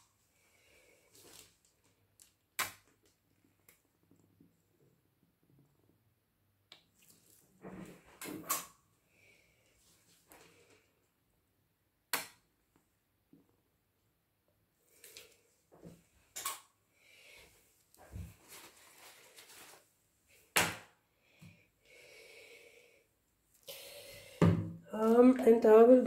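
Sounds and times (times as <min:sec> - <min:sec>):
soft rustling: 0:17.4 - 0:20.0.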